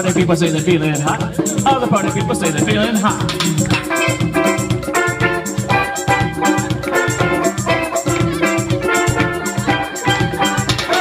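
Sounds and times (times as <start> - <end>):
keyboard: 0.0 - 11.0
steady drum beat: 0.0 - 11.0
steel pan melody: 0.0 - 11.0.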